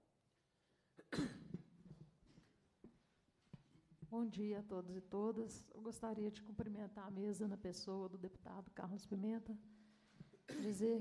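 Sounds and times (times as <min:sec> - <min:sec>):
person coughing: 0:01.0 - 0:01.7, 0:10.5 - 0:10.8.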